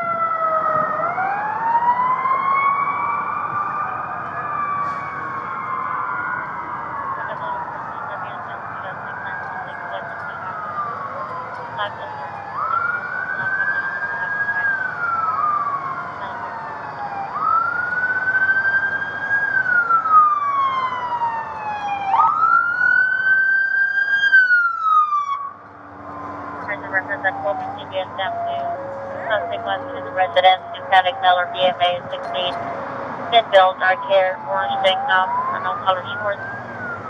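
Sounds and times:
emergency siren wailing: 0:00.0 - 0:37.0
fainter distant sirens: 0:00.0 - 0:37.0.

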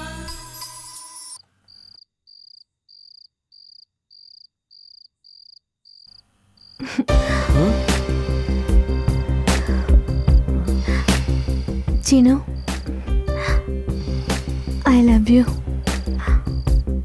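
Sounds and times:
music: 0:00.0 - 0:01.4, 0:07.1 - 0:17.0
cricket chirping: 0:00.6 - 0:17.0.

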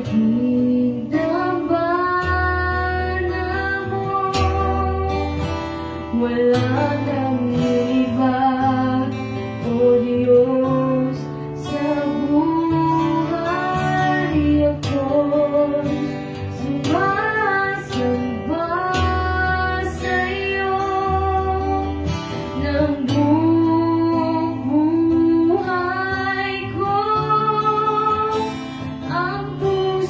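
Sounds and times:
strummed acoustic guitar: 0:00.0 - 0:30.0
woman singing: 0:00.0 - 0:30.0.

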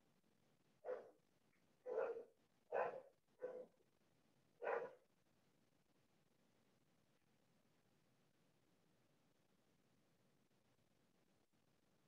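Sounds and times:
dog barking: 0:00.8 - 0:01.2, 0:01.8 - 0:03.8, 0:04.6 - 0:05.0.

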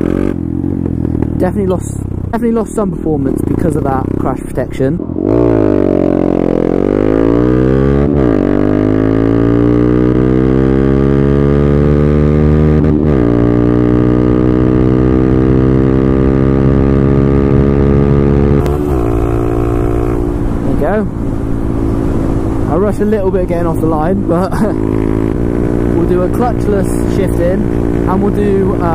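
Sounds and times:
motorcycle engine at full throttle: 0:00.0 - 0:28.9.

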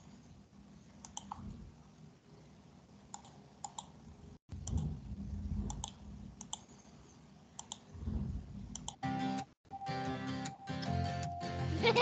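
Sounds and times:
computer mouse clicks: 0:01.0 - 0:01.6, 0:03.1 - 0:04.0, 0:04.6 - 0:05.0, 0:05.6 - 0:06.8, 0:07.6 - 0:07.9, 0:08.7 - 0:09.0
low muffled rumble: 0:04.5 - 0:06.4, 0:07.9 - 0:08.9.

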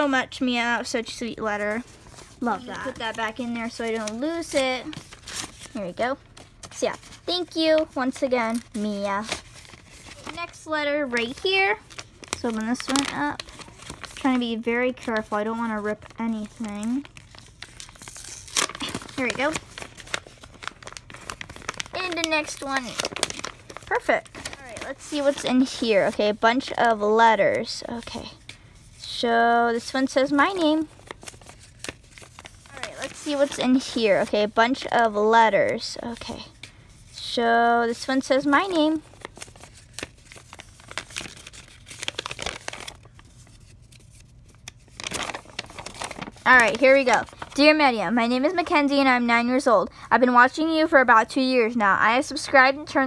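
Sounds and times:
paper envelope crinkling: 0:01.4 - 0:29.2, 0:29.8 - 0:49.0.

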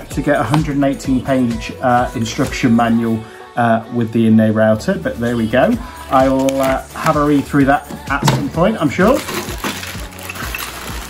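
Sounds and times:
plastic bag crinkling: 0:08.8 - 0:11.0
metal parts clinking: 0:09.1 - 0:11.0.

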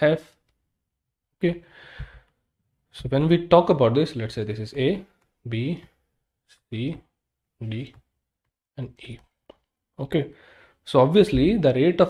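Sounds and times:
soft low thump: 0:11.3 - 0:11.6.

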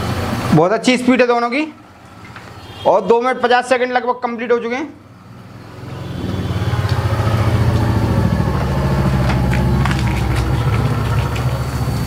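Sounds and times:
engine idling: 0:05.2 - 0:12.0.

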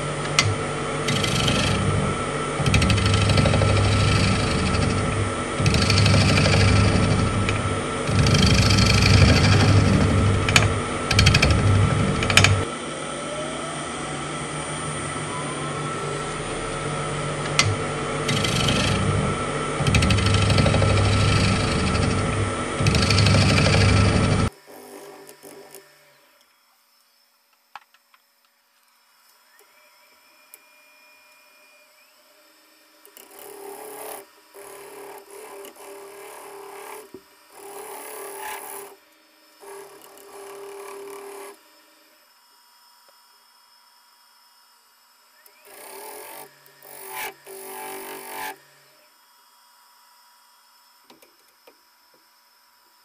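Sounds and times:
lathe motor hum and whine: 0:00.0 - 0:27.5, 0:28.3 - 0:53.0.

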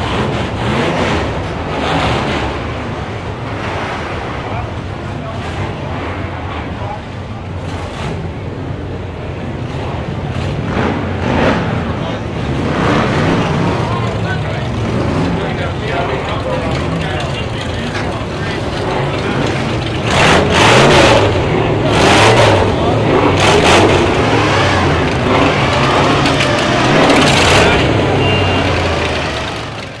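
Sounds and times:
crowd voices: 0:00.0 - 0:30.0
hot rod engine revving: 0:00.0 - 0:30.0.

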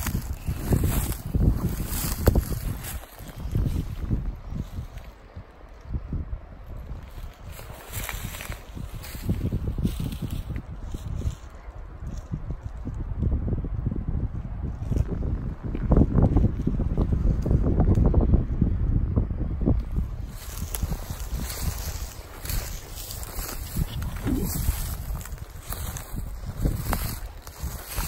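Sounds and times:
footsteps crunching through underbrush: 0:00.0 - 0:05.2, 0:06.8 - 0:12.4, 0:19.8 - 0:28.0
wind buffeting microphone: 0:00.0 - 0:28.0.

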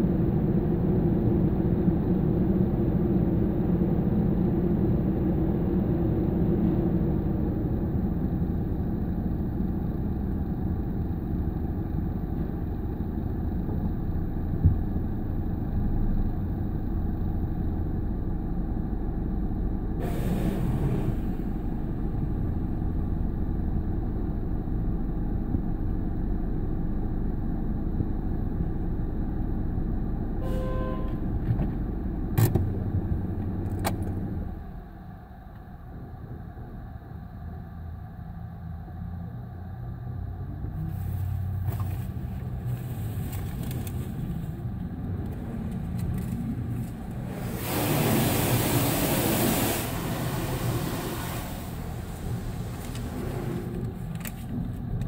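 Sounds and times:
car wash machinery rumbling: 0:00.0 - 0:25.1, 0:40.9 - 0:55.0
hiss: 0:20.0 - 0:21.8, 0:47.1 - 0:54.0
water spraying on glass: 0:46.8 - 0:53.7.

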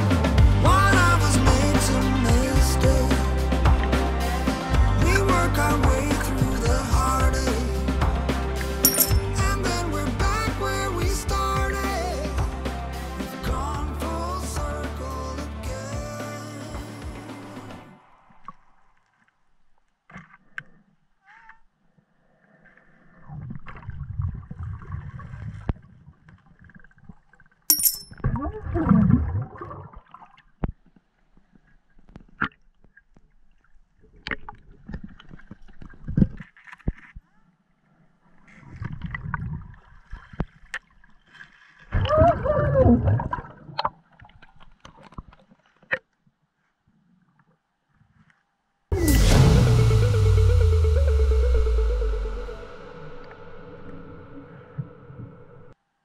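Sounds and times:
underwater bubbles gurgling: 0:28.2 - 0:30.4, 0:42.0 - 0:44.0.

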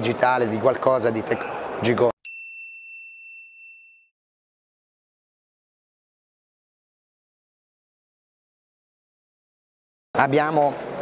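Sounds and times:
high clear ding: 0:02.2 - 0:04.2.

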